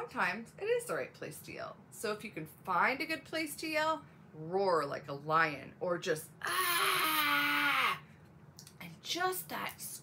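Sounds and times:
woman yelling: 0:06.4 - 0:08.0.

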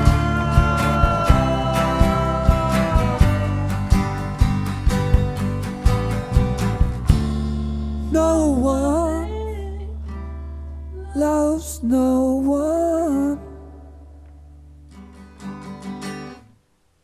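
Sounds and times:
man singing held line: 0:00.0 - 0:04.3
drums hitting on the beat: 0:00.0 - 0:07.8
rock band playing: 0:00.0 - 0:08.1.

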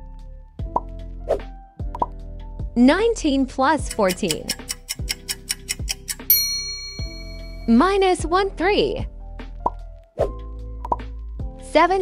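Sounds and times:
quiet background music: 0:00.0 - 0:12.0
clock ticks: 0:03.8 - 0:07.5
bell-like chime: 0:06.3 - 0:07.9.

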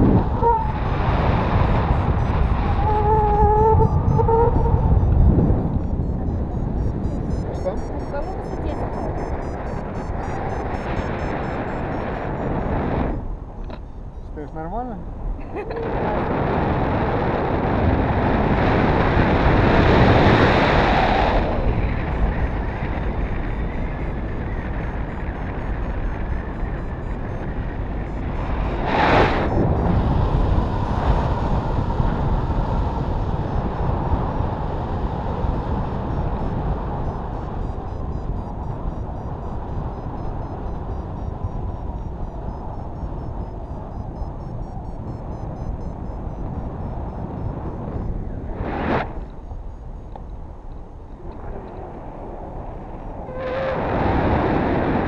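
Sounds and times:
wind roar on microphone: 0:00.0 - 0:55.0.

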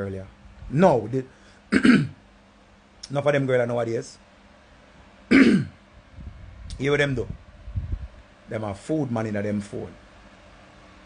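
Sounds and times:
man clearing his throat: 0:01.7 - 0:02.2, 0:05.3 - 0:05.8.

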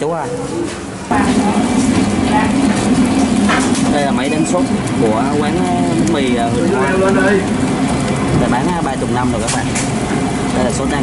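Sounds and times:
stand mixer motor hum: 0:01.2 - 0:11.0.

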